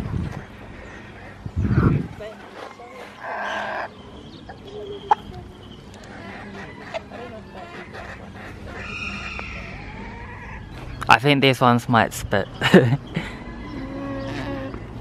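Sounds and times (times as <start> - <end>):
poultry calling: 0.6 - 11.0, 13.2 - 15.0.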